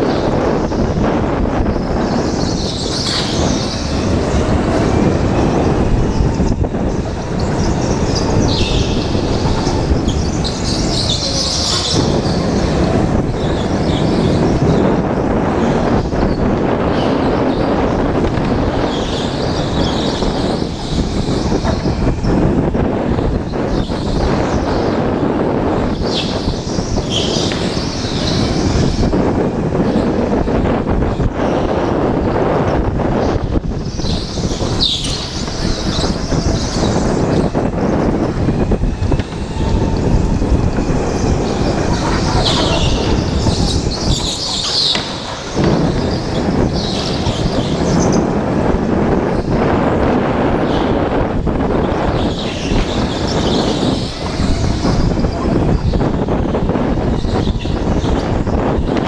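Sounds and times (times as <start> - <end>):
go-kart engine and tyres: 0.0 - 59.0
wind on microphone: 0.0 - 59.0
tyres squealing: 1.5 - 25.0, 33.2 - 49.6.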